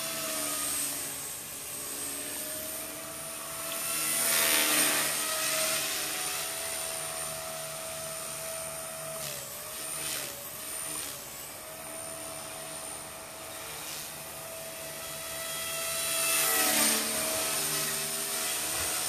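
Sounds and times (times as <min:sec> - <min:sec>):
rc helicopter motor and rotor whine: 0:00.0 - 0:19.0.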